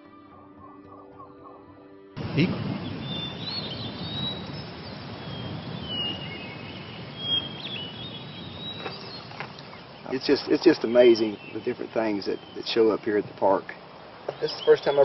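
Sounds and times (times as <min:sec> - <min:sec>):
birds singing: 0:00.0 - 0:15.0.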